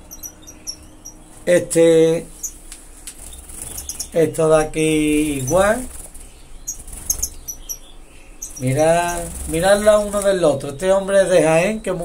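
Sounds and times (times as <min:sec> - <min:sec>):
finches chirping: 0:00.0 - 0:12.0
soft flutter of wings: 0:05.1 - 0:07.5, 0:08.6 - 0:10.4.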